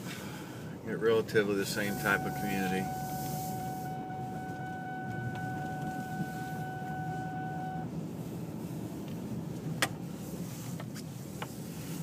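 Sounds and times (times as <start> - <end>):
car engine and road rumble: 0.0 - 12.0
steady high tone: 1.6 - 7.9.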